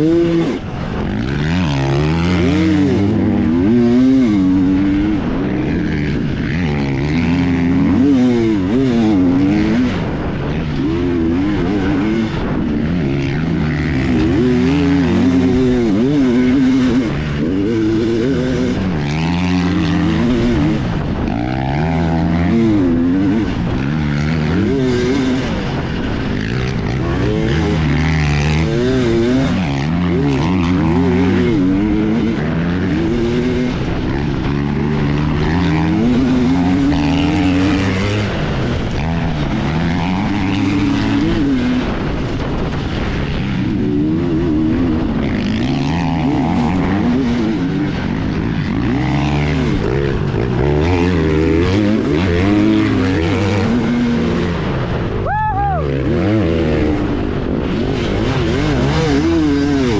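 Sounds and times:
dirt bike engine racing: 0.0s - 59.9s.

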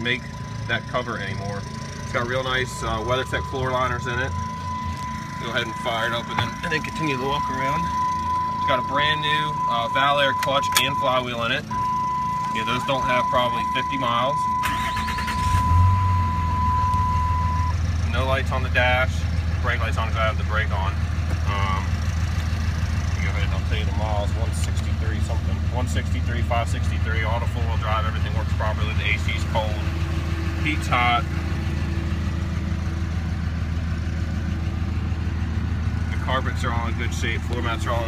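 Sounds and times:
diesel engine starting and idling: 0.0s - 38.0s
high electronic tone: 2.6s - 17.7s
starter cranking: 14.6s - 15.6s.

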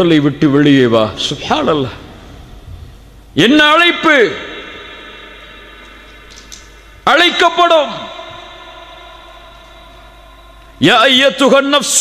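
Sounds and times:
echo of man's voice: 3.4s - 12.0s
hum of held tones: 4.4s - 10.9s.

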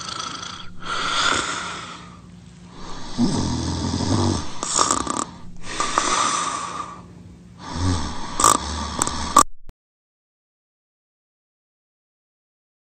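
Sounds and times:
loud snoring: 0.0s - 2.1s, 2.8s - 6.9s, 7.6s - 9.4s
breathy hissing out-breath: 0.0s - 9.4s.

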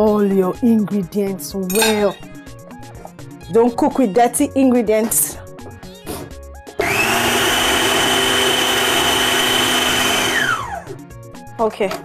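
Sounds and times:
food processor motor whining: 6.7s - 11.0s.

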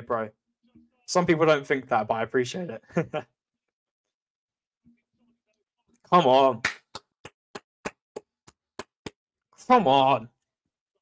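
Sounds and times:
hands clapping rhythmically: 6.4s - 9.2s.

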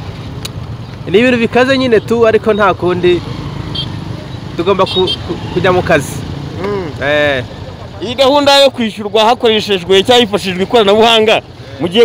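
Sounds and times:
man talking: 1.0s - 3.3s, 4.6s - 12.0s.

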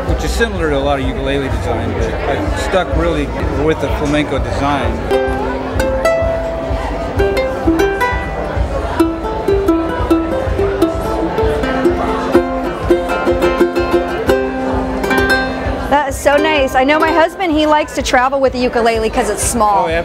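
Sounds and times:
ukulele plucked notes and chords: 4.9s - 18.0s.

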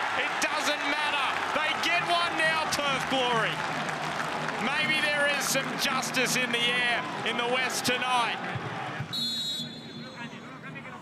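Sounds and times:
murmur of crowd voices: 4.5s - 11.0s
referee's whistle blast: 9.1s - 10.4s.

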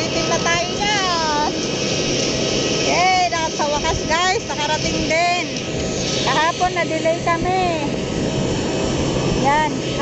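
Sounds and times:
aircraft engines whining: 0.0s - 10.0s.

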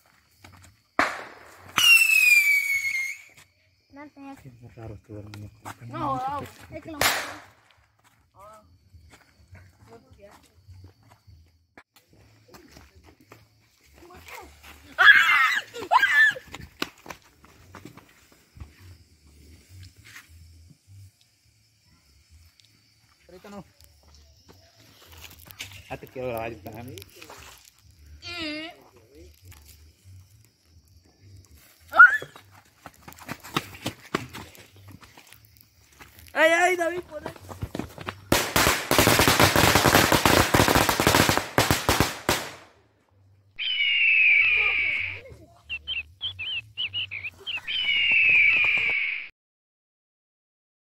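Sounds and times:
firecrackers popping: 0.9s - 3.4s, 6.7s - 7.9s, 35.5s - 42.8s, 45.8s - 49.1s
small crackles and clicks: 25.0s - 28.0s.

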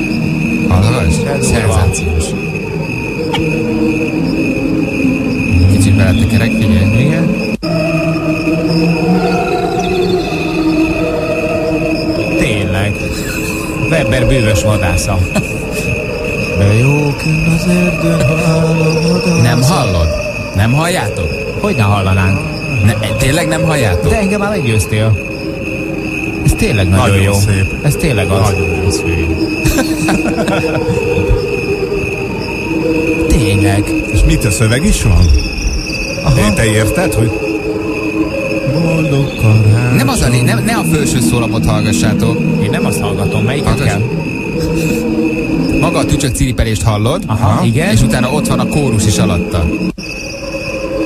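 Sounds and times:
crickets chirping: 0.0s - 51.0s
slowed-down crickets like a choir: 0.0s - 51.0s.

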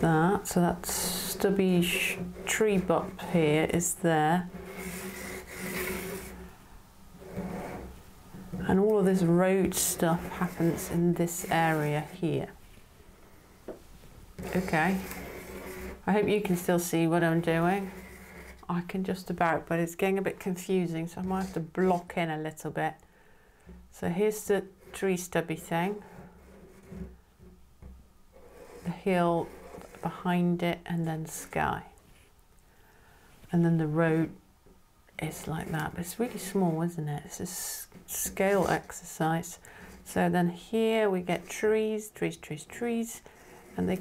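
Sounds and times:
low room hum: 0.0s - 44.0s
pastel stick scratching on paper: 4.4s - 6.5s, 9.6s - 12.2s, 14.4s - 18.7s, 21.2s - 22.0s.

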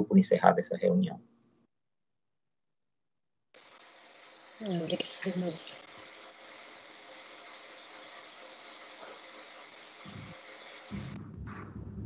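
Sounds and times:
light hum: 3.6s - 12.0s
faint hiss: 3.8s - 11.2s
low muffled bumps: 10.1s - 12.0s.

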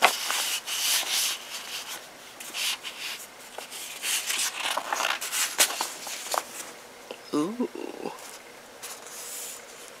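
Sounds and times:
paper pages rustling: 0.0s - 6.8s, 8.2s - 10.0s.

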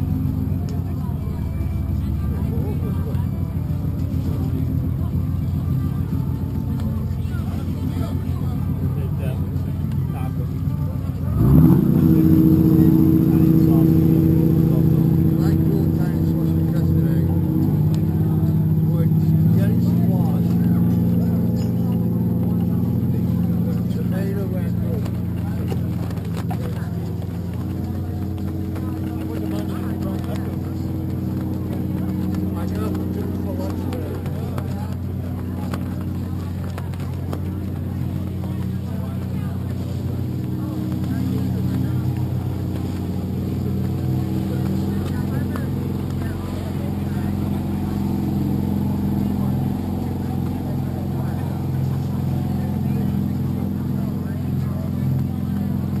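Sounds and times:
motor droning: 0.0s - 56.0s.

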